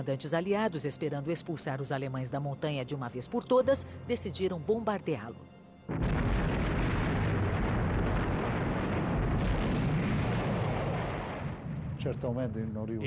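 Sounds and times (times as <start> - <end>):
bombs exploding in low rumble: 5.9 - 12.9.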